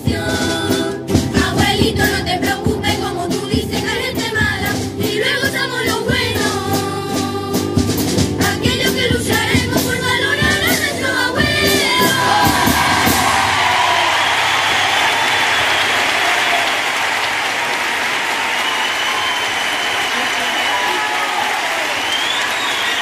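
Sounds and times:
children's choir with guitars: 0.0 - 13.9
audience applauding: 12.2 - 23.0.

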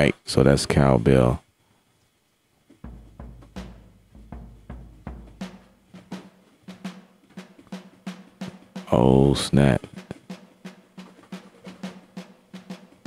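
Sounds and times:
deep kick drum: 2.8 - 6.4
drum kit groove: 2.8 - 13.0.

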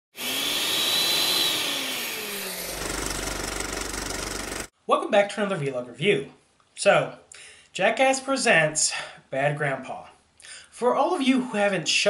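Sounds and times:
electric blender whirring: 0.1 - 4.7
fast mechanical rattle: 2.5 - 4.7.

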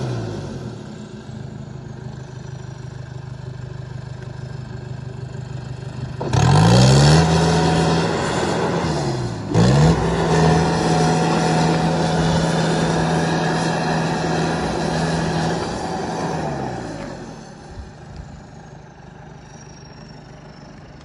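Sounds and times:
diesel engine revving: 0.0 - 1.8, 5.6 - 21.0.

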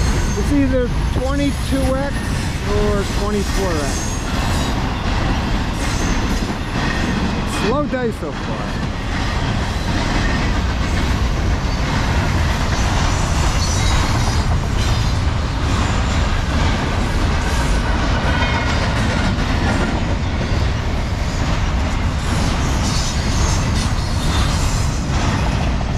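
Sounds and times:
freight train wheels rumbling: 0.0 - 25.9.

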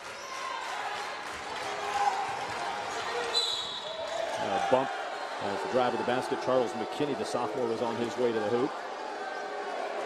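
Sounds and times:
referee's whistle blast: 3.3 - 4.0.

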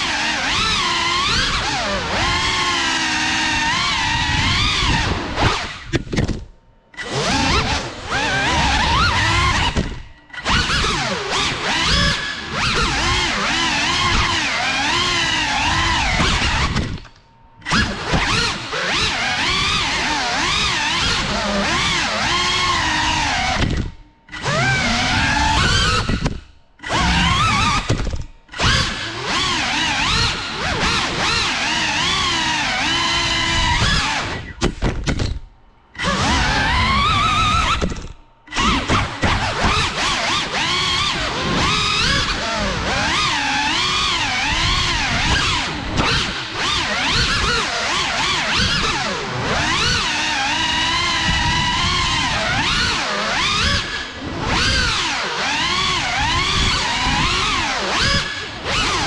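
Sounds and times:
drone motors whining: 0.0 - 59.0.

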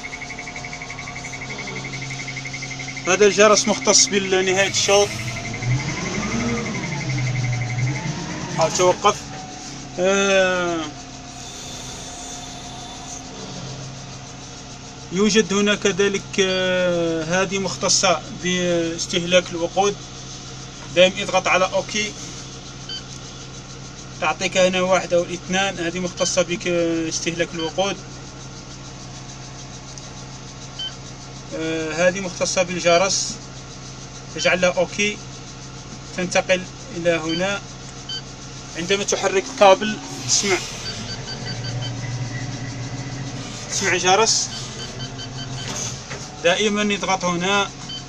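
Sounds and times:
high-pitched electronic beep: 0.0 - 9.3, 37.3 - 46.0
rapid high-pitched warning buzzer: 0.0 - 15.6, 21.2 - 23.6, 36.4 - 48.0
crane engine idling: 0.0 - 25.2, 25.8 - 48.0.

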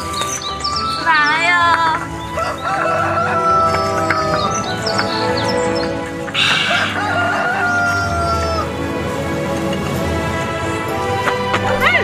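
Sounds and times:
background music: 0.0 - 12.0
rooster crowing: 2.3 - 4.9, 6.4 - 8.9.

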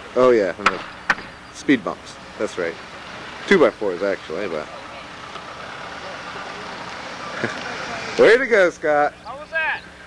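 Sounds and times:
car driving slowly past: 0.0 - 10.0.

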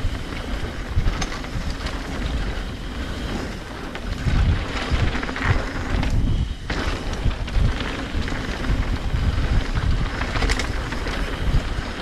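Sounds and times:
bike frame and chain rattling: 0.0 - 12.0
bike tyres rumbling on dirt: 0.0 - 12.0
wind on microphone: 0.0 - 12.0.

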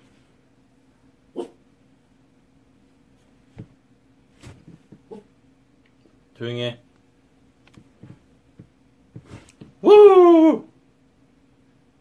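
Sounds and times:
dog barking: 1.3 - 1.6, 5.1 - 5.3.

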